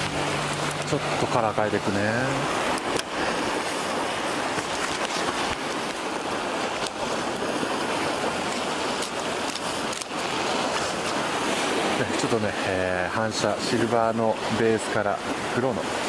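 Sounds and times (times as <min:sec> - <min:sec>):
surf washing against rocks: 0:00.0 - 0:16.0.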